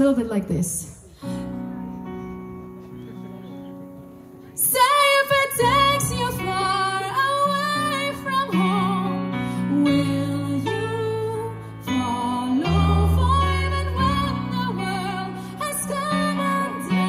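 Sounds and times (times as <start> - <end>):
woman singing with vibrato: 4.6 - 17.0.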